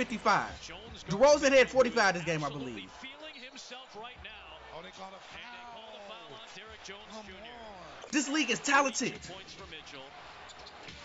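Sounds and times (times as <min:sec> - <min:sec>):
faint sports commentary: 0:00.0 - 0:11.0.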